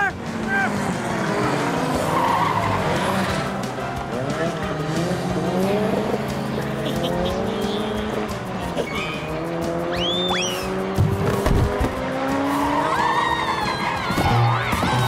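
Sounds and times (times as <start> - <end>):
background music: 0.0 - 15.0
cartoon go-kart engines: 0.0 - 15.0.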